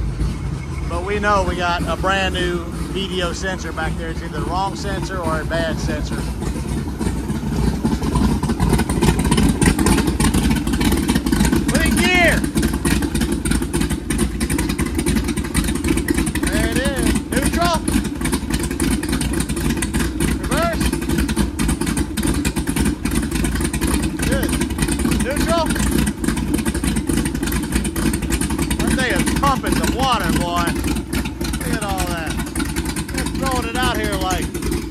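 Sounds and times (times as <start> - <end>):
boat engine choppy exhaust: 0.0 - 34.9.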